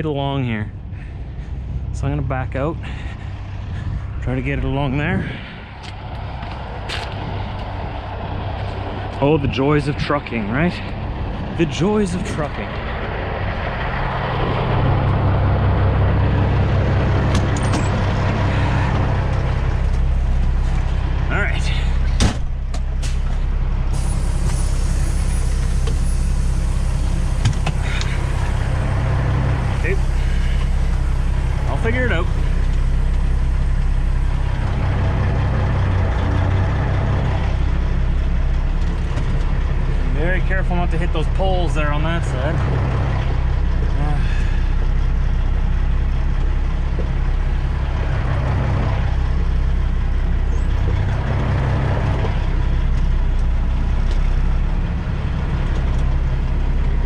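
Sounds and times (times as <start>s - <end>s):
diesel truck engine running: 0.0s - 57.0s.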